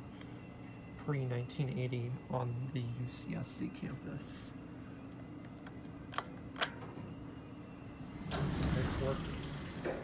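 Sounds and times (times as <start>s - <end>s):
steady low hum: 0.0s - 10.0s
elevator doors sliding open: 8.0s - 10.0s.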